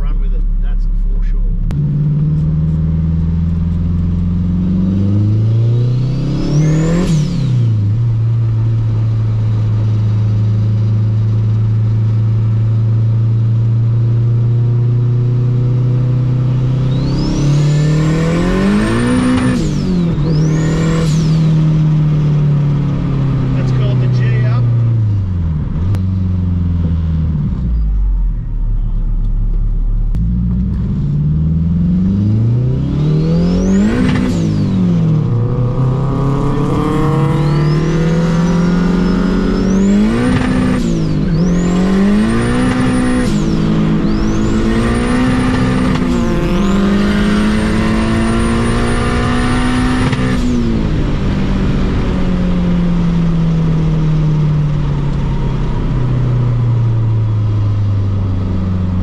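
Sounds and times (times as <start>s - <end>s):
car engine accelerating hard: 0.0s - 59.0s.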